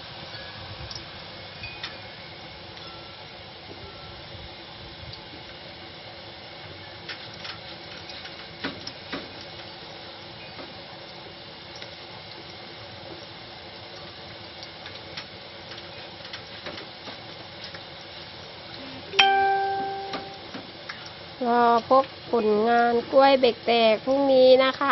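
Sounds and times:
food sizzling in hot oil: 0.0s - 24.9s
loud ringing tone: 19.2s - 20.5s.

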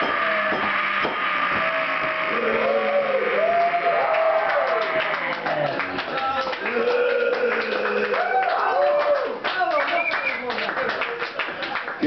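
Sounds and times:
audience clapping: 0.5s - 12.0s.

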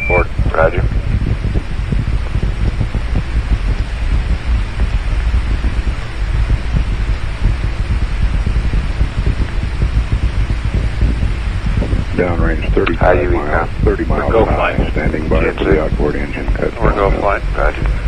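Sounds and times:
distant rocket engine rumble: 0.0s - 18.0s.

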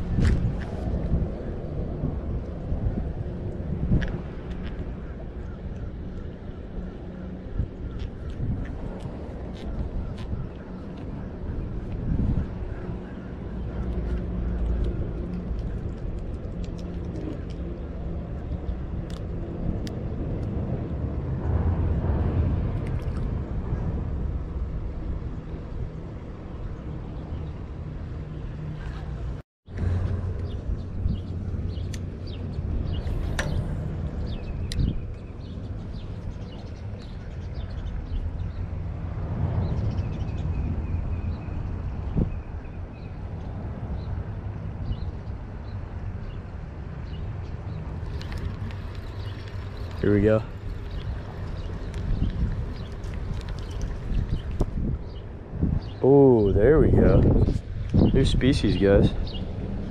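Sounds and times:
low engine drone: 0.0s - 57.3s
wind noise on microphone: 0.0s - 59.9s.

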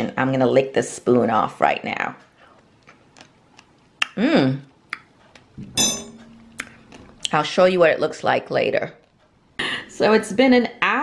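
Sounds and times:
metal spoons clinking: 5.8s - 6.6s.

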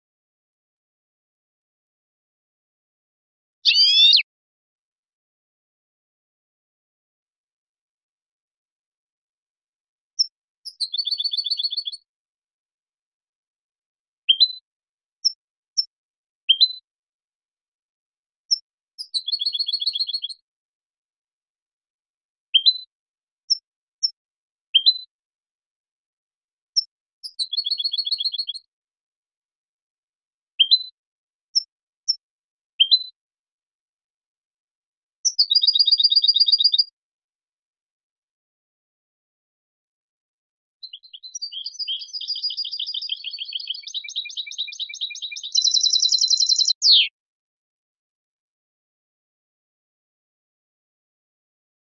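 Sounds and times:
finch song with chirps and trill: 3.6s - 4.3s, 10.2s - 12.1s, 14.3s - 14.6s, 15.2s - 15.9s, 16.5s - 16.8s, 18.5s - 20.4s, 22.6s - 22.9s, 23.5s - 24.2s, 24.8s - 25.1s, 26.8s - 28.7s, 30.6s - 31.0s, 31.6s - 32.2s, 32.8s - 33.2s, 35.2s - 36.9s, 40.8s - 47.2s.

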